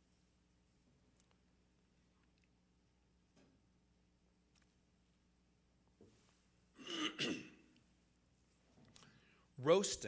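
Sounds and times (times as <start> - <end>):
man clearing his throat: 6.8 - 7.7.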